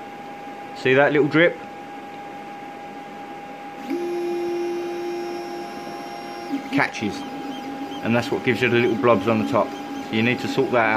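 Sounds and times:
printer high hum: 3.7s - 10.9s
stepper motors buzzing: 3.8s - 10.9s.

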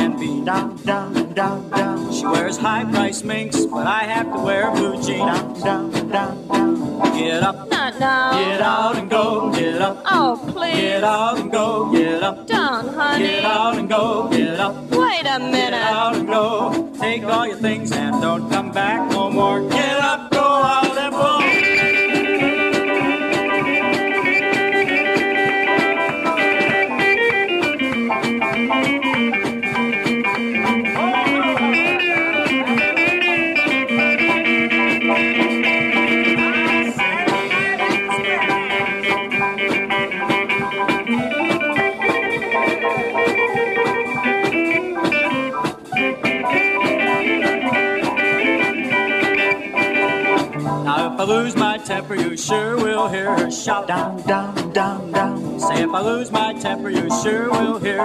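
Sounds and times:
lead guitar with bent notes: 0.0s - 58.0s
rhythm backing: 0.0s - 58.0s.

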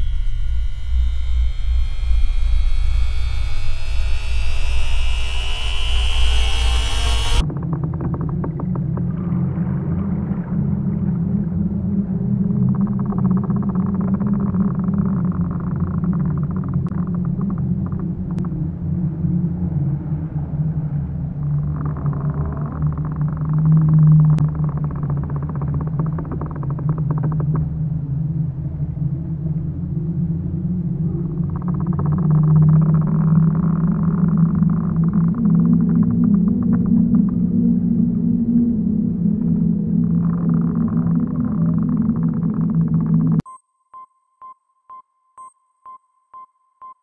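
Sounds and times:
high rising tone: 0.0s - 7.5s
low rumbling drone: 0.0s - 43.4s.

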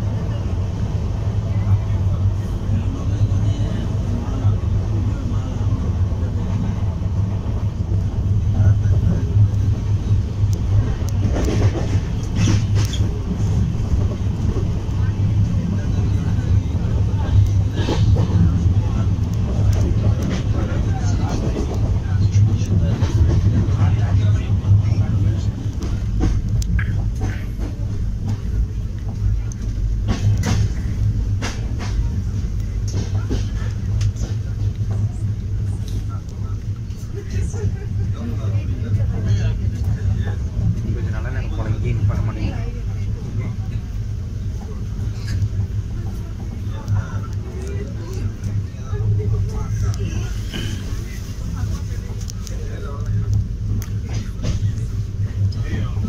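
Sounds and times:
train wheels rumbling: 0.0s - 56.0s.

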